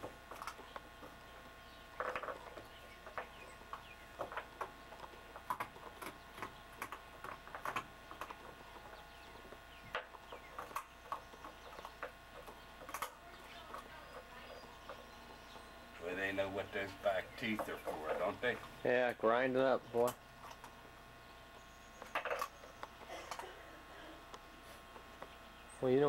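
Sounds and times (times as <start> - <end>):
puppy gnawing on a chew: 0.0 - 18.8, 20.0 - 23.6
faint steady hum: 0.0 - 26.0.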